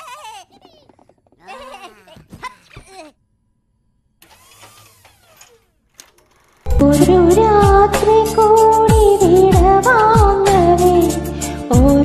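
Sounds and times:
loud music: 6.7s - 9.9s.

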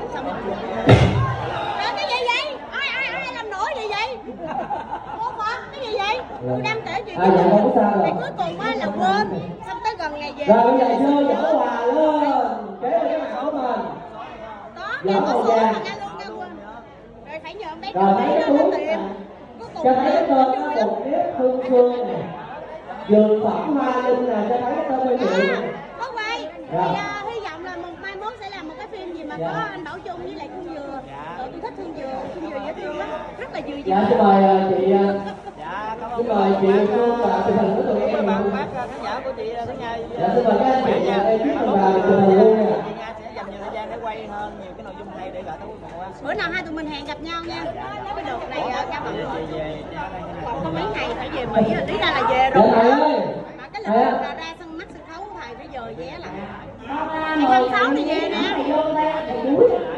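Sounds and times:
close conversational speech: 0.0s - 59.9s
people chattering in background: 0.0s - 59.9s.

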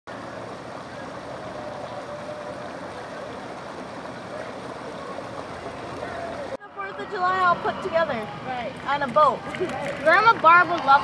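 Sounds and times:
water noise: 0.1s - 11.0s.

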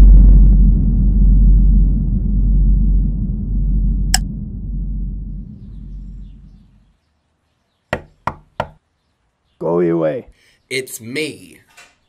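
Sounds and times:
low rumble: 0.0s - 6.9s.

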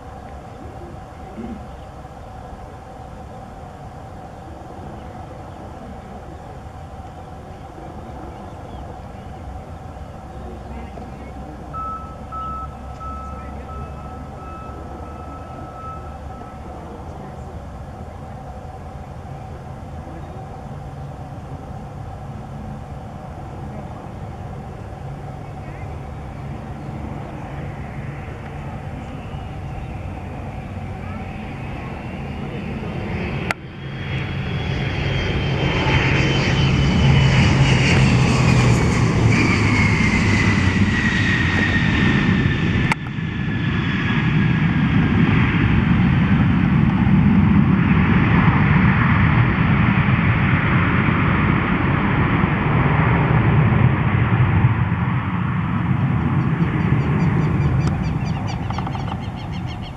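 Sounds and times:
high jet whine falling in pitch: 0.0s - 59.9s
jet landing rumble: 0.0s - 59.9s.

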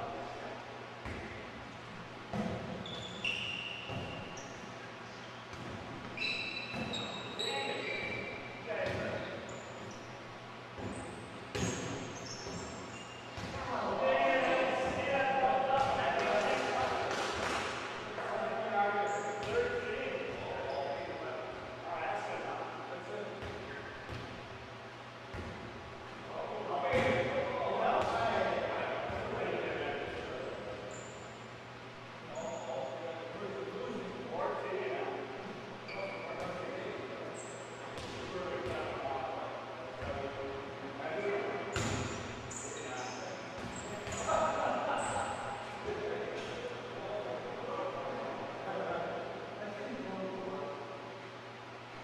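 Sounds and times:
sneakers squeaking: 1.0s - 15.1s, 18.9s - 21.2s, 30.0s - 31.5s, 32.3s - 33.1s, 35.8s - 36.7s, 37.3s - 38.9s, 41.7s - 46.6s.

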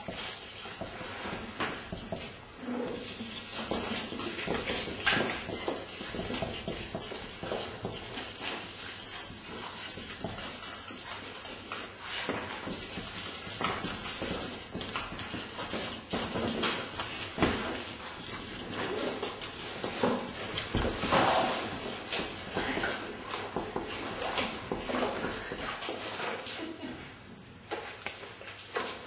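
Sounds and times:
markers scratching on paper: 0.0s - 25.8s
marker squeak: 2.6s - 11.6s.

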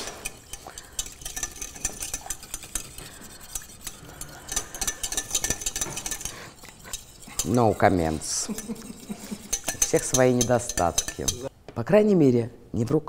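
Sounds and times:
metal utensil stirring in saucepan: 0.0s - 11.5s.

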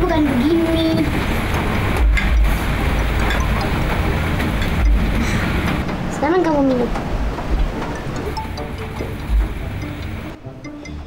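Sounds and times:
heavy low rumble: 0.0s - 10.4s
background music: 0.0s - 11.0s
steady rushing noise: 0.0s - 11.0s.

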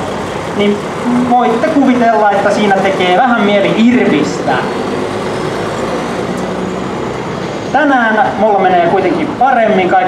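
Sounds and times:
bus engine running: 0.0s - 10.0s
street traffic: 0.0s - 10.0s.

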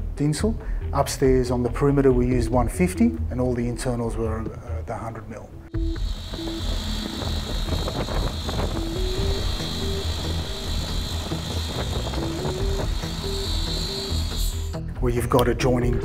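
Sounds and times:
slow melodic background music: 0.0s - 16.0s
construction machinery running: 5.8s - 14.8s
constant high whine: 5.8s - 14.9s.

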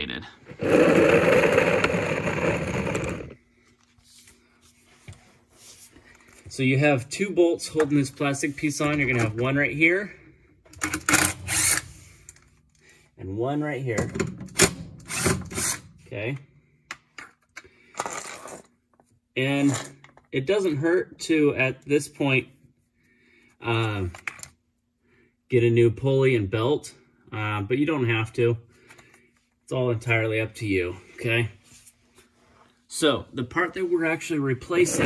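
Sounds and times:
cordless driver motor running: 0.6s - 3.4s.

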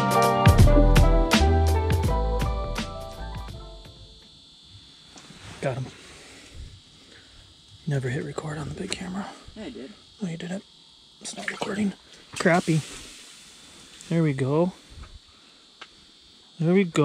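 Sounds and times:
music track: 0.0s - 4.2s
faint high-pitched whine: 3.9s - 17.0s.

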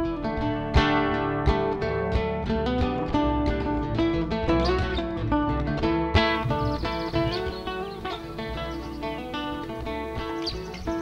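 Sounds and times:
acoustic guitar plucked notes: 0.0s - 11.0s.

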